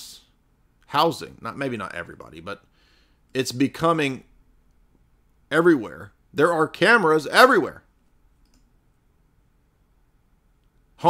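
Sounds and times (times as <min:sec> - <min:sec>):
faint click: 0:08.4 - 0:08.7.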